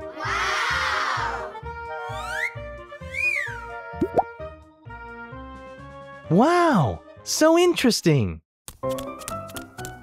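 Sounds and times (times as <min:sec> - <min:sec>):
light children's music: 0:00.0 - 0:07.5.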